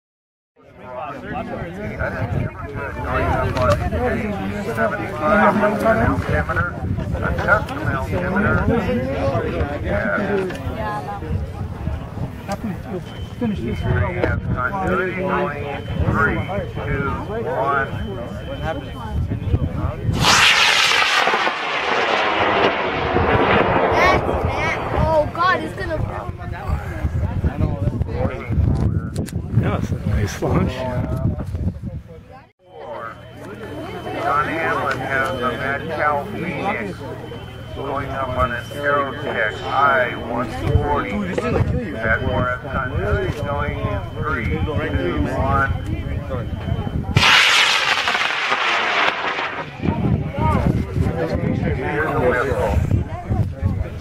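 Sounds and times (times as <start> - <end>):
rocket motor roaring: 20.2 - 25.8, 47.2 - 50.0.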